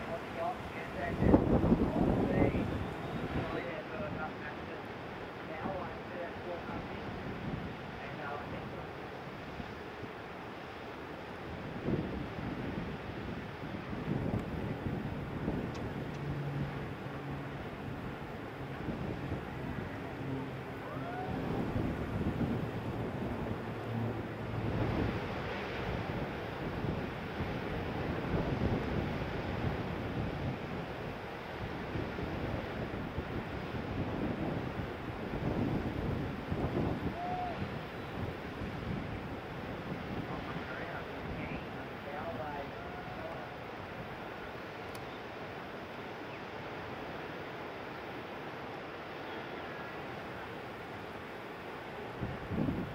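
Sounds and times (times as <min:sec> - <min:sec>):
wind gusting on microphone: 0:00.0 - 0:49.0, 0:49.7 - 0:52.9
ocean surf breaking: 0:00.0 - 0:52.9.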